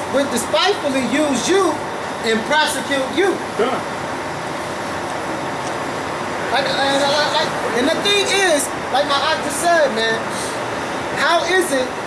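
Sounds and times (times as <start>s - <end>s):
street background noise: 0.0s - 12.0s.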